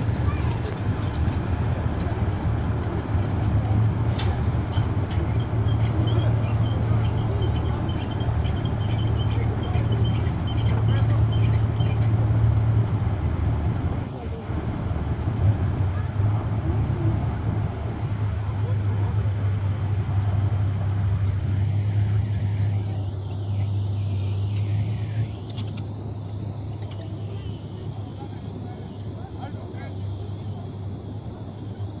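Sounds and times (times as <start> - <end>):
boat engines droning: 0.0 - 32.0.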